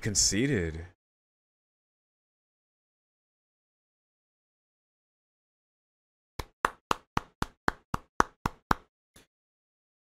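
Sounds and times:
person clapping slowly: 6.4 - 8.9.

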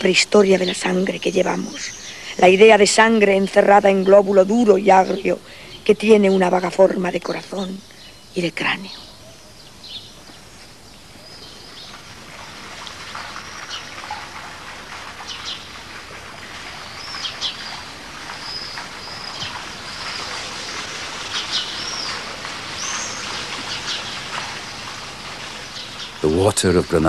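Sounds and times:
running water: 0.0 - 8.9, 9.7 - 27.0
small birds chirping: 0.0 - 27.0.

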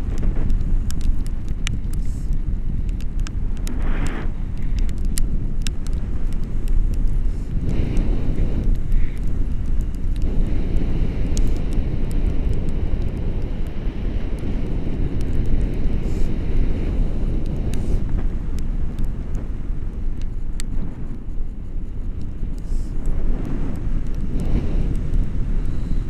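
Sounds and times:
small clicks: 0.0 - 26.0
wind noise rumble: 0.0 - 26.0.

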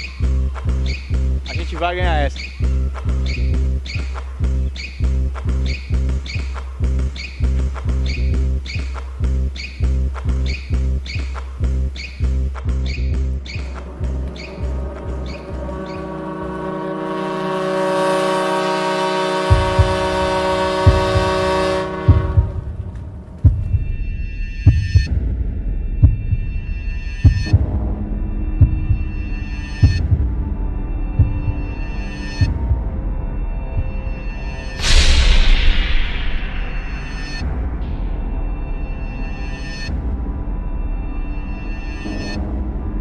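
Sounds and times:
film music with steady beat: 0.0 - 43.0
sustained chord: 13.8 - 22.8, 29.3 - 43.0
low thumps: 19.5 - 26.5, 34.8 - 38.3.

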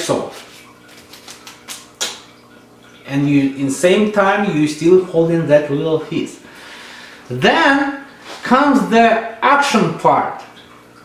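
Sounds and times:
paper receipt crinkling: 0.3 - 2.2.

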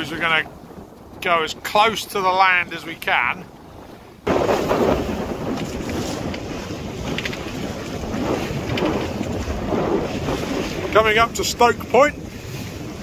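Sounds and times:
water rushing along a hull: 0.0 - 13.0
wind buffeting microphone: 0.0 - 13.0.

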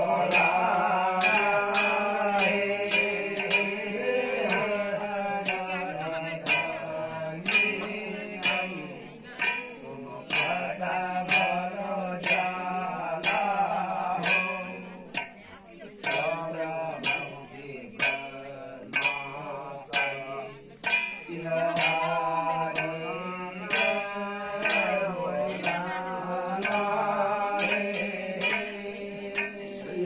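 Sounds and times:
man chanting folk song: 0.0 - 30.0
steady percussion beat: 0.0 - 30.0.

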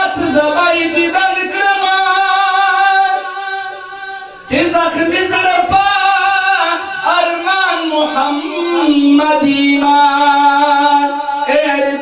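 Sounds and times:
man chanting into microphone: 0.0 - 12.0.

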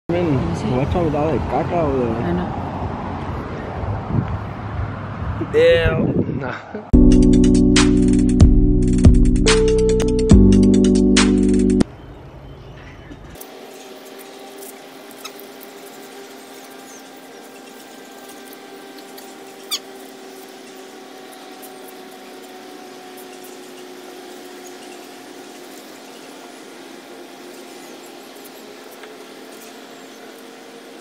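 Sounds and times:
water spraying from garden hose: 13.4 - 31.0.

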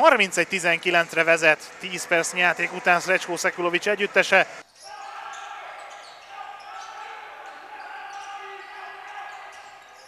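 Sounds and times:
players' voices calling out: 2.0 - 10.0.

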